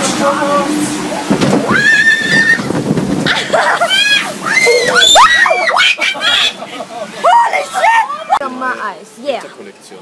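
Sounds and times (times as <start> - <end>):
rushing water noise: 0.0 - 10.0
riders screaming: 1.7 - 2.7, 3.3 - 6.6.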